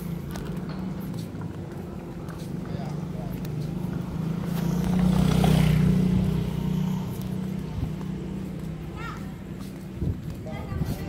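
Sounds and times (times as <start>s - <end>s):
motorcycle passing by: 0.0s - 11.0s.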